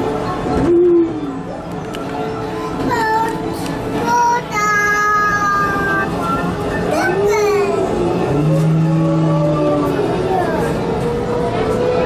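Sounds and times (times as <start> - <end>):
music: 0.0 - 8.4.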